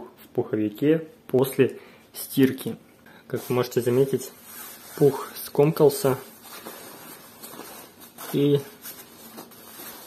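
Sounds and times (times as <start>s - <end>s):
soft fabric scuffs: 3.3s - 10.0s
rustling of nylon jacket: 3.4s - 10.0s.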